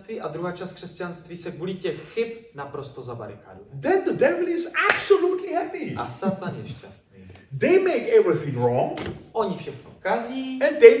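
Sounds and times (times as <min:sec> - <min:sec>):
man talking: 0:00.0 - 0:11.0
hand clap: 0:04.8 - 0:05.2.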